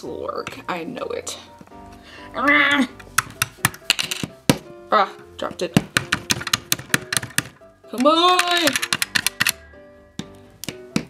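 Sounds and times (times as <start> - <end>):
background music: 0.0 - 11.0
wooden stick knocking on plastic: 5.6 - 9.4, 10.2 - 11.0
plastic toy clicks and taps: 6.0 - 9.6.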